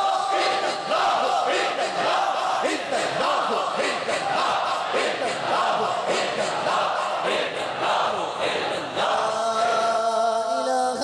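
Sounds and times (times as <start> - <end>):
men chanting together: 0.0 - 11.0.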